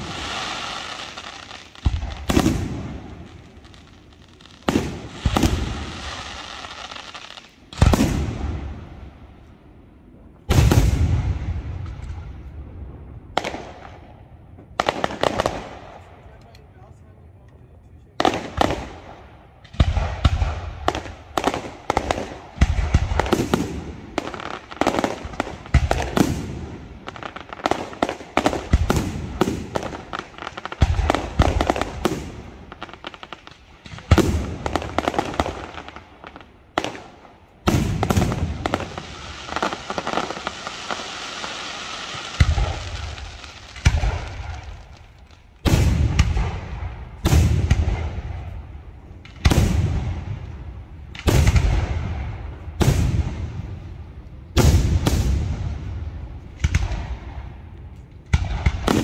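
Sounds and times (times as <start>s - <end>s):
firework hiss: 0.0s - 8.3s, 37.7s - 46.0s.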